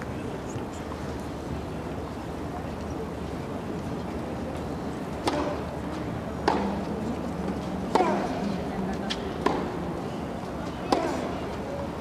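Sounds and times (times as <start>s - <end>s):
stadium ambience hum: 0.0s - 12.0s
tennis ball hit by racket: 5.2s - 5.6s, 6.4s - 6.8s, 7.9s - 8.4s, 9.4s - 9.8s, 10.8s - 11.4s.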